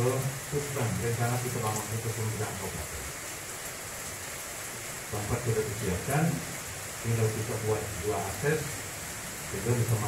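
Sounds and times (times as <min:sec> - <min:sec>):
steady recording hiss: 0:00.0 - 0:10.0.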